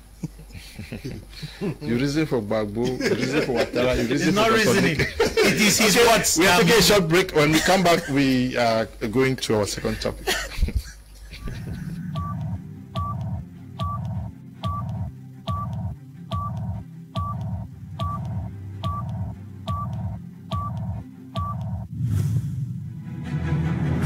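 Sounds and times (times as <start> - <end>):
pulsing low bass: 11.7 - 21.9
short electronic beeps with clicks: 12.2 - 21.9
whoosh: 21.9 - 23.4.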